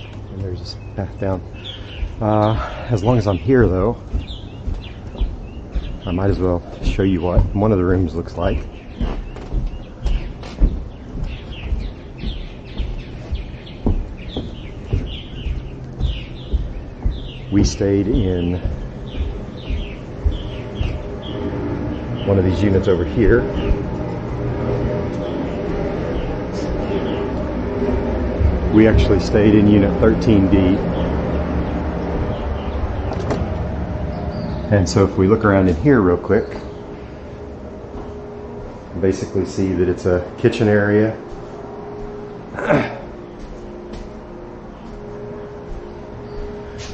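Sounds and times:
footsteps on deck: 0:00.0 - 0:40.4, 0:41.2 - 0:46.9
birds chirping: 0:00.0 - 0:46.9
low outdoor rumble: 0:00.0 - 0:46.9.

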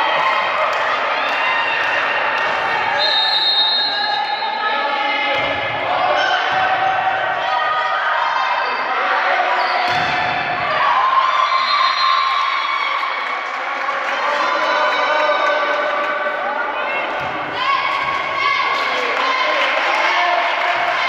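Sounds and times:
players and spectators shouting: 0:00.0 - 0:13.4, 0:14.1 - 0:21.0
volleyball thumps: 0:09.9 - 0:10.6.

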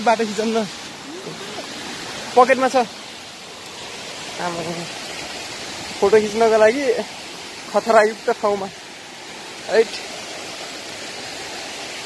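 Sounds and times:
waterfall roaring: 0:00.0 - 0:12.0.

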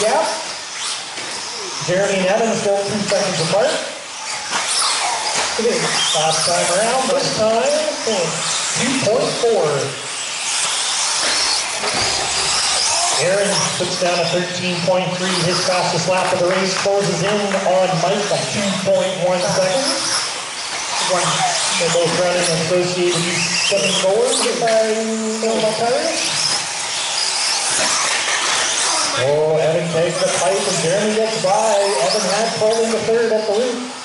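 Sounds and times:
faint high whines: 0:00.0 - 0:34.0
rc cars motor hiss: 0:00.0 - 0:34.0.

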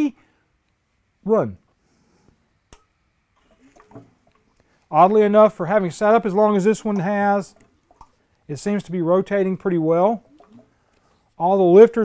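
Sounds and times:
man's voice: 0:04.9 - 0:07.5, 0:11.4 - 0:12.0.

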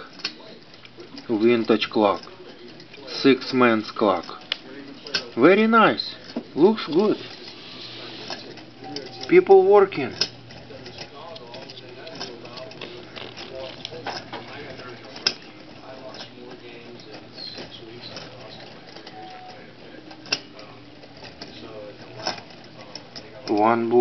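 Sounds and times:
clock mechanism ticking: 0:00.0 - 0:07.5
faint voices: 0:00.0 - 0:24.0.

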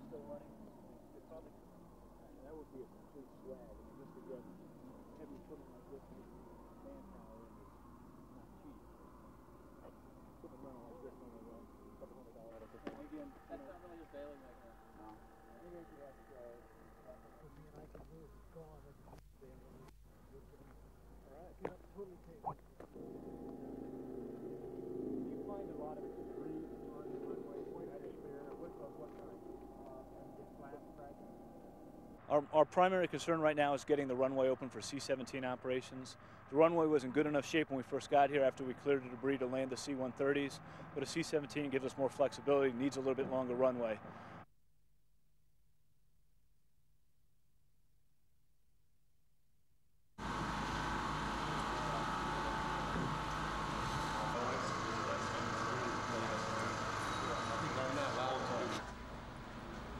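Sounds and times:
engine whine over deep rumble: 0:00.0 - 0:32.2, 0:50.2 - 0:59.9
faint voices speaking: 0:09.8 - 0:32.0, 0:51.5 - 0:59.0
heavy machinery engine running: 0:22.9 - 0:32.2, 0:50.2 - 0:59.9.

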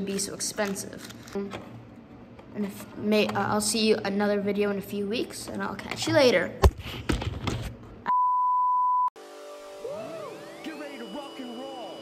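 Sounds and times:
steady test-tone beep: 0:08.1 - 0:09.2, 0:10.3 - 0:12.0.

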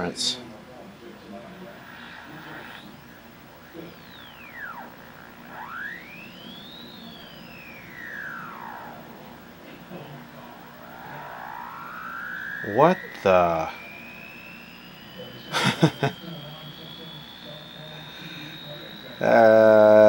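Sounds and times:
electronic whistling tones gliding: 0:01.2 - 0:20.0.

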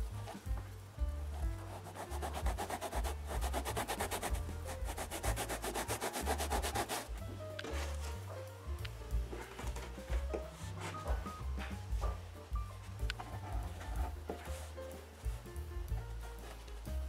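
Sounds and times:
background music with bass line: 0:00.0 - 0:17.0
sandpaper rasping on foam: 0:01.3 - 0:07.2.

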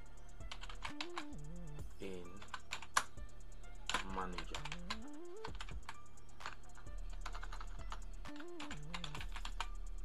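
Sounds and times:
background music stepping melody: 0:00.0 - 0:10.0
typing on computer keyboard: 0:00.4 - 0:01.4, 0:02.3 - 0:03.2, 0:03.8 - 0:09.7.

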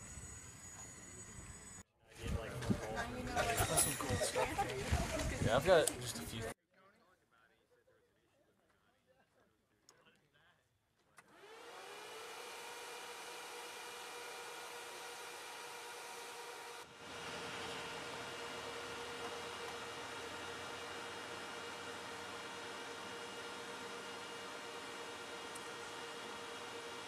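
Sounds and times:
motor-driven blower whining: 0:11.3 - 0:27.0.

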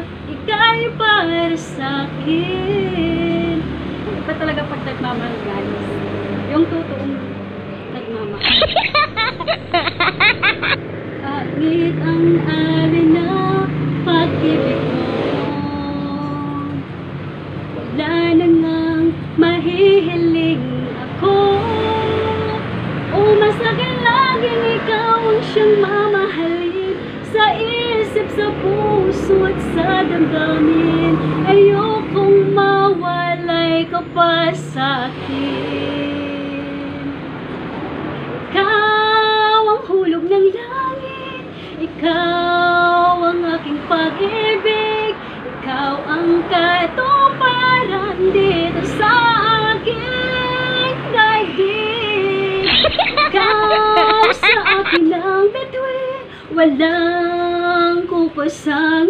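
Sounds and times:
woman singing a ballad: 0:00.0 - 0:05.9, 0:06.5 - 0:16.9, 0:17.8 - 0:37.2, 0:38.5 - 0:59.0.

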